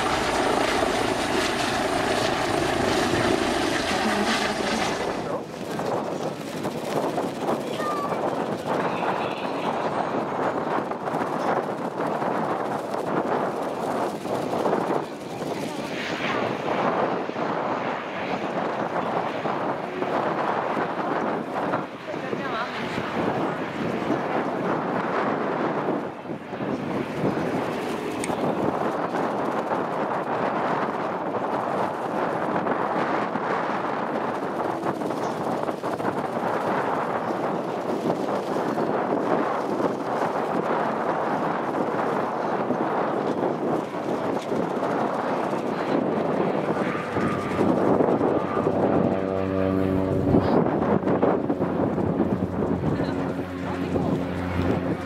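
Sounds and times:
turboprop engine running: 0.0 - 55.0
wind noise on microphone: 0.0 - 55.0.

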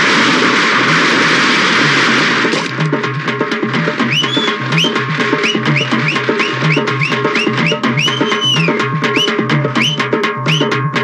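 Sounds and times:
firecrackers crackling: 0.0 - 8.8.

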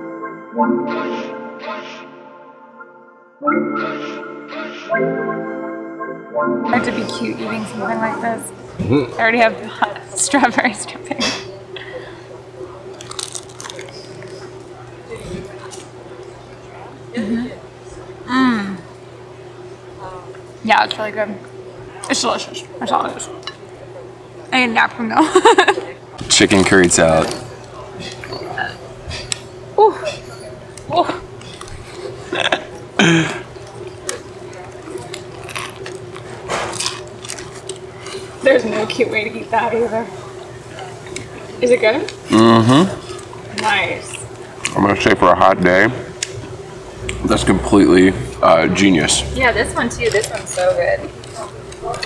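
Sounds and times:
crunchy pastry bite: 13.0 - 14.5, 34.0 - 37.9
falling vocal sound: 46.9 - 49.4.

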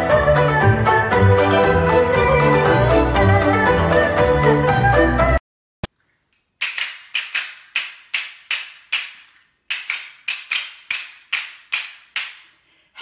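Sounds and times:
metal hand cymbals struck together: 6.4 - 12.6.

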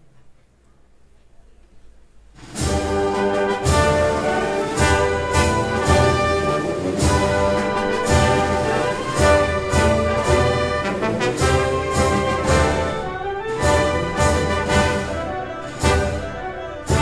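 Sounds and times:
wind band playing a march: 2.4 - 17.0.

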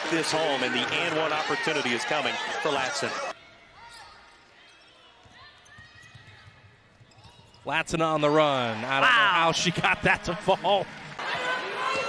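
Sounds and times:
arena crowd noise: 0.0 - 12.0
sneaker squeaks: 3.8 - 7.6.

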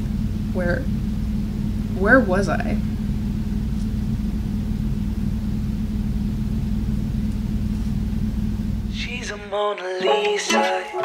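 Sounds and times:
air conditioner rumbling: 0.0 - 9.6.

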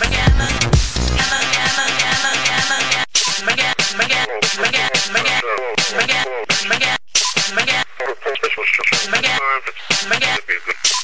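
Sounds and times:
electronic dance music: 0.0 - 7.9, 8.8 - 11.0.

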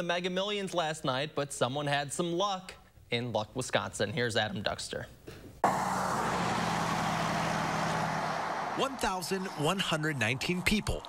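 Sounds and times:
truck engine hum: 5.6 - 9.8.

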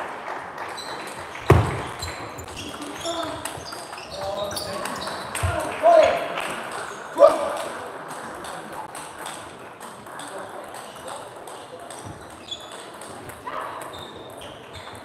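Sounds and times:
table tennis balls clicking: 0.1 - 15.0.

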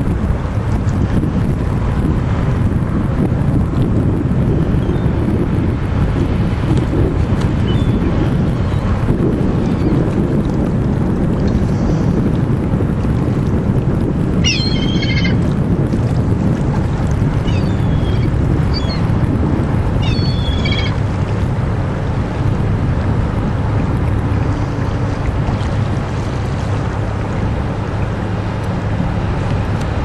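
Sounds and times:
low rumble: 0.0 - 30.0
wind buffeting microphone: 0.0 - 30.0
high bird calls: 14.4 - 15.4, 17.5 - 19.0, 20.0 - 21.0.

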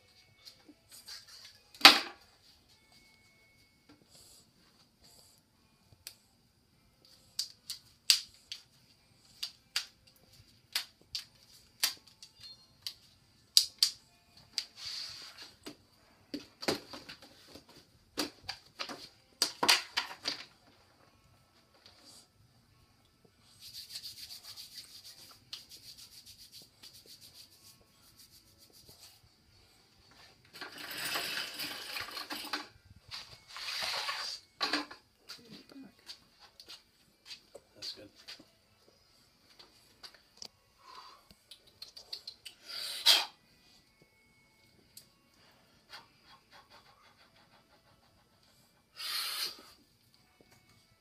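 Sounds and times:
hands rubbing and slapping: 7.3 - 8.7, 9.4 - 13.0, 23.6 - 29.2
tape being peeled off: 33.1 - 34.5.

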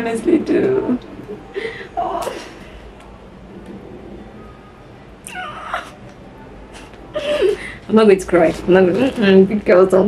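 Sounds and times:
woman whimpering: 5.3 - 6.0.

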